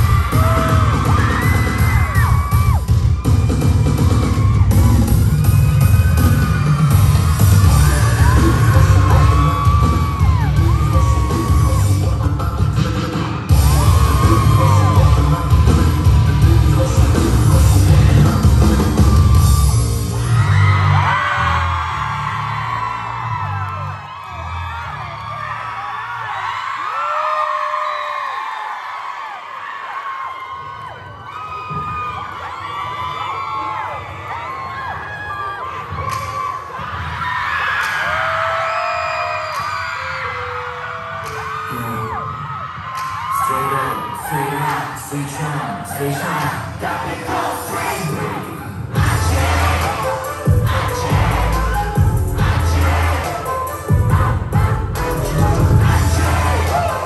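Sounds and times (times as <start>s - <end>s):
pop dance track with heavy bass: 0.0s - 21.0s, 43.4s - 57.0s
crowd screaming and cheering: 0.0s - 57.0s.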